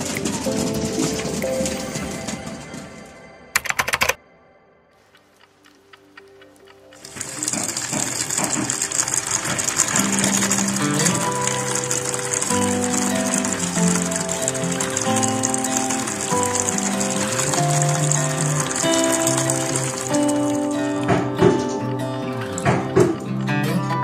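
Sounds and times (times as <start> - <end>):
background music: 0.0 - 24.0
water pouring into a basin: 7.0 - 21.3.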